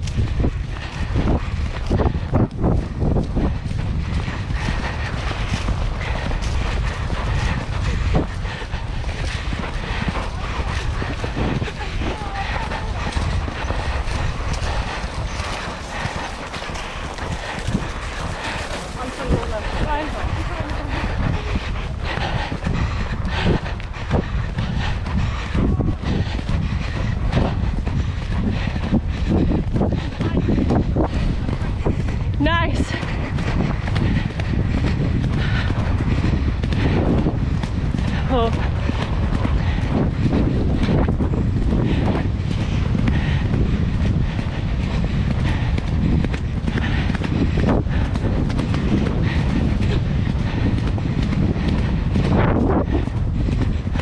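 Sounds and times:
heavy rumble on microphone: 0.0s - 54.0s
horse hoofbeats: 0.0s - 54.0s.

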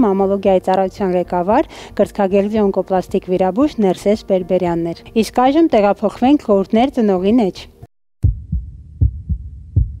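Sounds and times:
heartbeat thumps: 8.2s - 10.0s.

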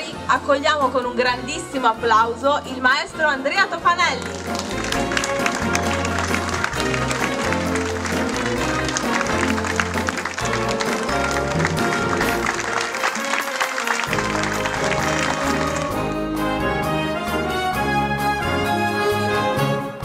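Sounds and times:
wind band playing lively tune: 4.0s - 20.0s
audience applauding: 4.2s - 16.2s.

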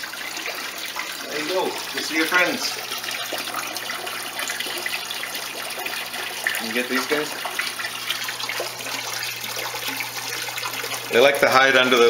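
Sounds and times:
water pouring into tank: 0.0s - 12.0s.

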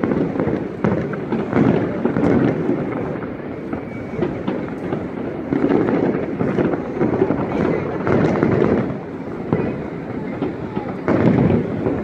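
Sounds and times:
distant fireworks bursts and crackling: 0.0s - 12.0s
sharp firework cracks: 0.0s - 12.0s.

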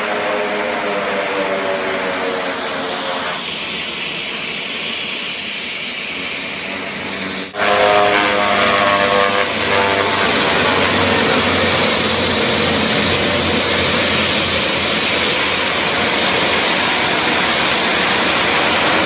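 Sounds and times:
turboprop engines roaring: 0.0s - 19.0s
whining engine tone: 0.0s - 19.0s.

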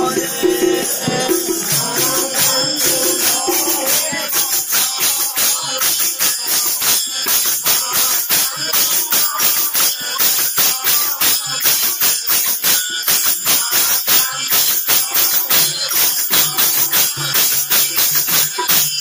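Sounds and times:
fast percussion with jingling metal: 0.0s - 19.0s.

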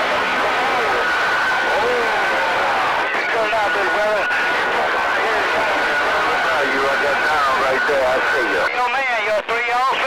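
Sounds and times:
voices talking over radio: 0.0s - 10.0s.

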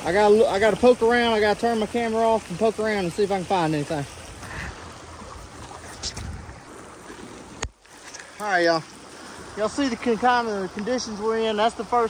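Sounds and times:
rain hissing: 0.0s - 12.0s
running floodwater: 0.0s - 12.0s
low rumble on microphone: 4.2s - 7.1s.

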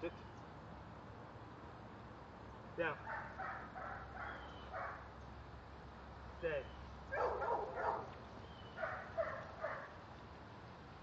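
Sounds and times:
dog barking: 3.0s - 5.1s, 7.1s - 8.2s, 8.8s - 10.0s.

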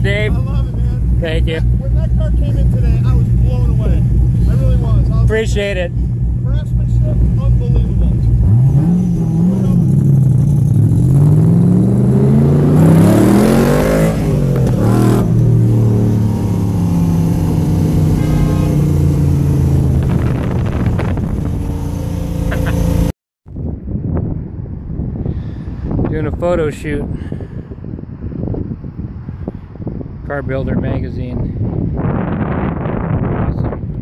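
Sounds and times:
car engine accelerating hard: 0.1s - 23.1s.

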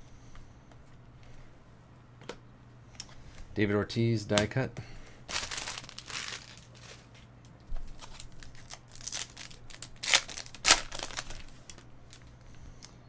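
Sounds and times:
foil wrapper crinkling: 5.3s - 12.4s.

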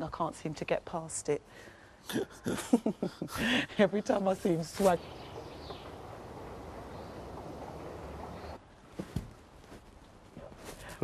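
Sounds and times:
outdoor hiss: 2.8s - 9.2s.

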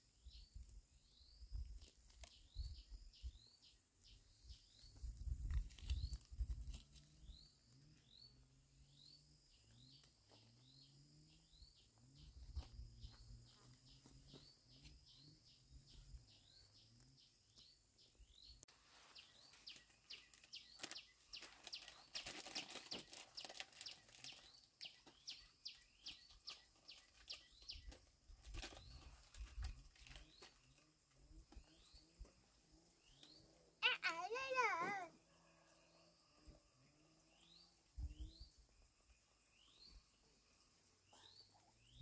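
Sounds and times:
faint bird chirps: 0.2s - 42.0s.

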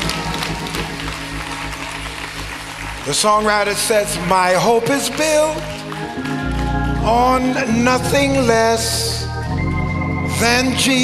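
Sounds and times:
congregation noise: 0.0s - 11.0s
keyboard sustained chord: 0.0s - 11.0s.

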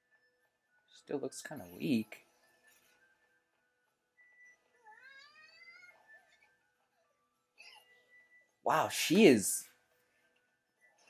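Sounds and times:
faint music: 0.0s - 11.0s
cat meowing: 4.8s - 6.1s.

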